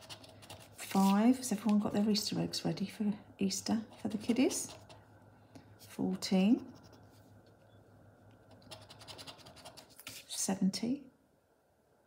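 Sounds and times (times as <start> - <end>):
chip scratching scratchcard: 0.0 - 1.2, 8.5 - 10.2.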